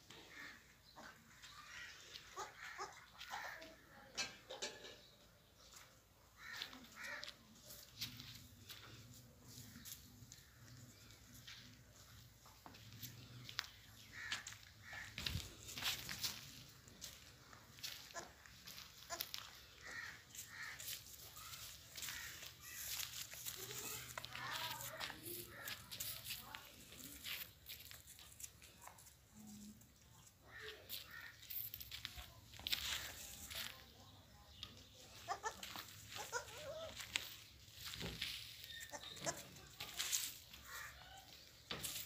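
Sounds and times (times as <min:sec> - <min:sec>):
goat kids calling: 0:00.2 - 0:03.8, 0:12.6 - 0:28.4, 0:30.4 - 0:33.8, 0:35.0 - 0:42.0
small hooves rustling on straw: 0:06.4 - 0:42.0
goat kids bleating: 0:35.1 - 0:38.0, 0:38.6 - 0:41.0.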